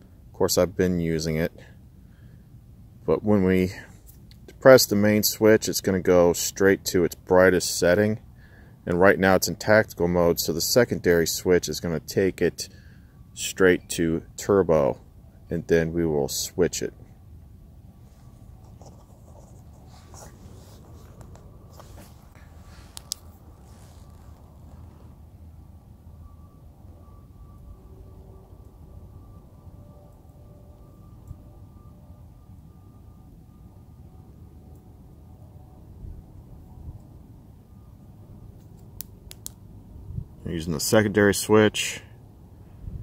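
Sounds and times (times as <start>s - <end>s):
low outdoor background noise: 0.0s - 43.0s
flashlight clicks and rustles: 20.8s - 24.6s.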